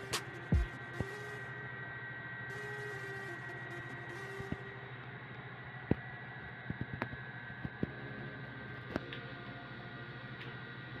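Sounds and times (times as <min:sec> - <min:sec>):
high whine: 0:00.0 - 0:11.0
industrial machinery hum: 0:00.0 - 0:11.0.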